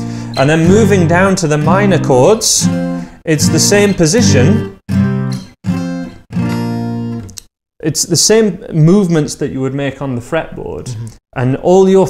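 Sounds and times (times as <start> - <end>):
acoustic guitar chords strummed: 0.0 - 7.3
man's voice: 0.3 - 4.8, 7.8 - 12.0.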